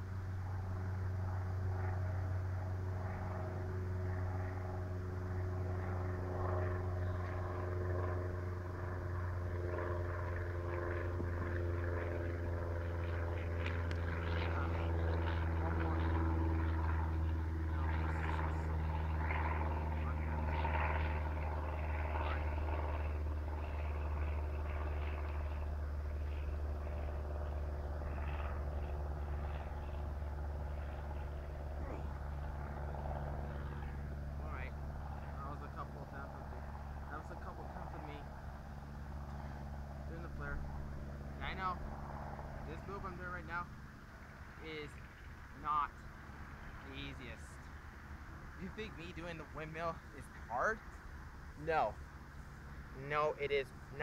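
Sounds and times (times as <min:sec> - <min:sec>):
engine droning: 0:00.0 - 0:54.0.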